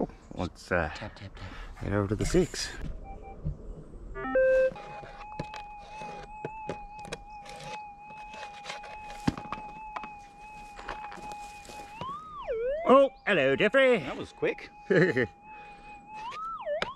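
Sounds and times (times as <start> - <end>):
metal detector beeps and tone: 4.2 - 16.9.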